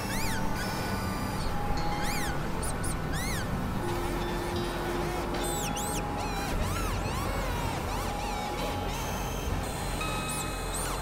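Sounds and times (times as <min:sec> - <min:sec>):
noise drone synthesizer music: 0:00.0 - 0:11.0.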